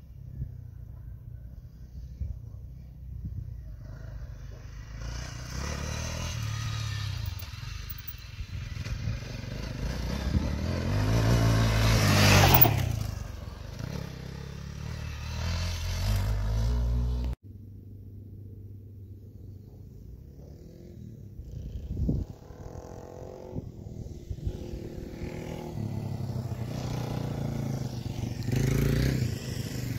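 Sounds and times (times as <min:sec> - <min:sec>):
dirt bike engine revving: 0:04.8 - 0:08.1, 0:08.9 - 0:17.4, 0:22.2 - 0:29.9.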